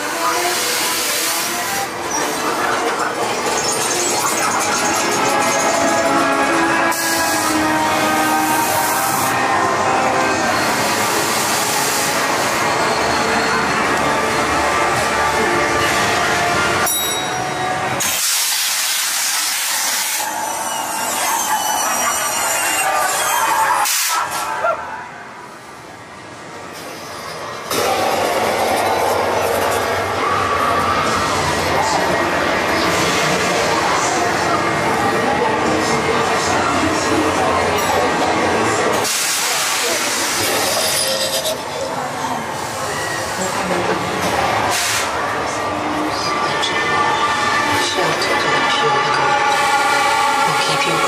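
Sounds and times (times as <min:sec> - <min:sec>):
faint voices: 0:00.0 - 0:18.1, 0:18.7 - 0:51.0
loud hiss: 0:18.0 - 0:20.2, 0:39.0 - 0:40.6.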